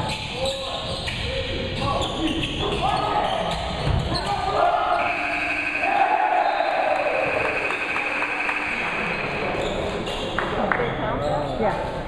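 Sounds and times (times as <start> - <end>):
players shouting: 4.3 - 8.7
scoreboard buzzer: 5.0 - 6.0, 7.3 - 9.2.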